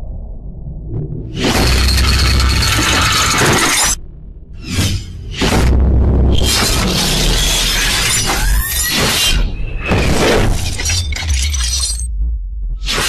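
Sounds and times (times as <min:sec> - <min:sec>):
deep bass rumble: 0:00.0 - 0:03.3, 0:04.0 - 0:07.4, 0:09.9 - 0:13.0
shattering metallic hits: 0:09.8 - 0:12.1.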